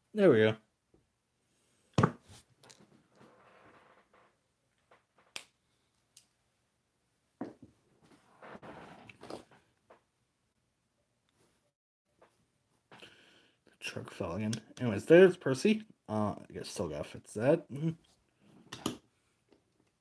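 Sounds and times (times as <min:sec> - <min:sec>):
faint rubbing: 0:08.0 - 0:09.4.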